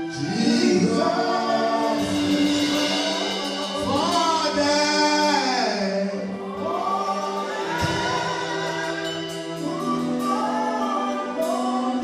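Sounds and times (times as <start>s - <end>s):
man singing into microphone: 0.0s - 6.8s
choir singing: 0.0s - 12.0s.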